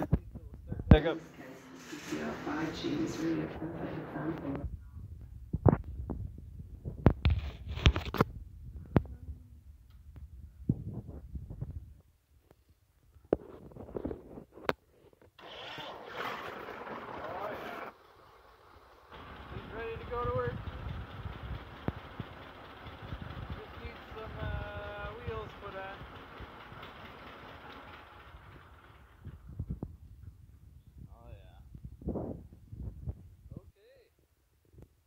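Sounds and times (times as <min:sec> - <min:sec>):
rustling noise: 0:01.5 - 0:09.2, 0:10.2 - 0:17.9
tractor engine idling: 0:16.0 - 0:29.6.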